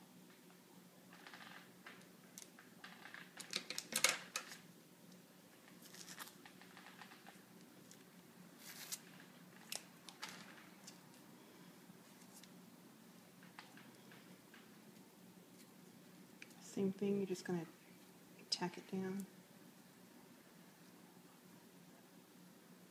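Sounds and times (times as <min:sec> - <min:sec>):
flower stems rustling and crackling: 0:01.1 - 0:12.6.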